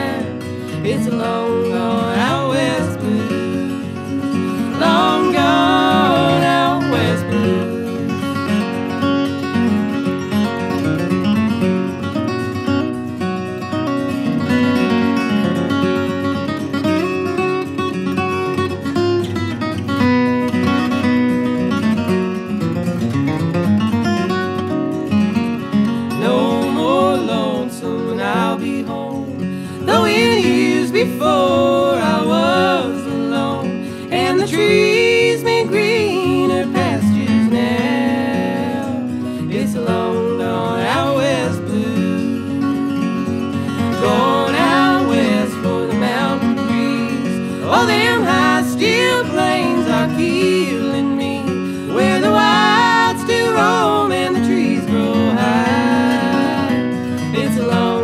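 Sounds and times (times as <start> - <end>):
acoustic guitar country blues: 0.0 - 58.0.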